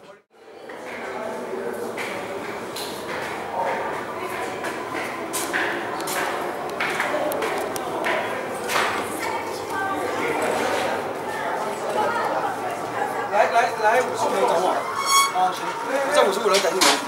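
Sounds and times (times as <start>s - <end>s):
voices talking in stairwell: 0.0s - 17.0s.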